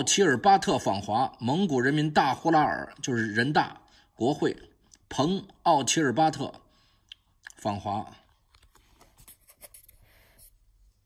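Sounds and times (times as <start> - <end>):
book page turning: 8.5 - 10.4.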